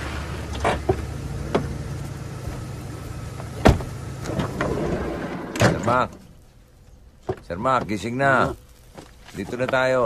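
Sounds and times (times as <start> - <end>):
motor vehicle engine drone: 0.0 - 8.9.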